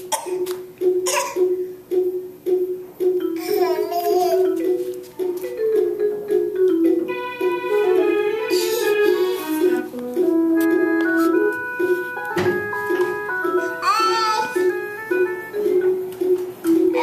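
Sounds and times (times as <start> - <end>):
electronic organ-like melody: 0.7 - 17.0
child squealing: 8.3 - 9.7
knock: 12.4 - 13.0.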